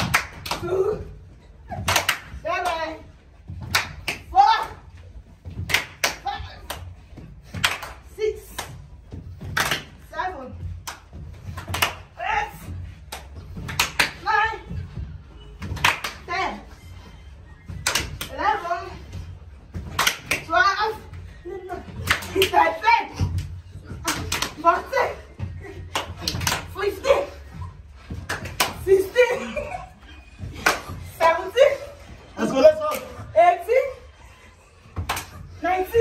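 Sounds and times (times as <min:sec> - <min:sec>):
sharp smacks and claps: 0:00.0 - 0:00.7, 0:01.8 - 0:02.9, 0:03.6 - 0:04.3, 0:05.5 - 0:10.0, 0:10.8 - 0:12.1, 0:13.0 - 0:14.2, 0:15.6 - 0:16.3, 0:17.7 - 0:18.3, 0:19.8 - 0:20.6, 0:21.9 - 0:22.6, 0:23.9 - 0:24.6, 0:25.9 - 0:26.8, 0:28.1 - 0:28.9, 0:30.5 - 0:31.0, 0:35.0 - 0:35.4.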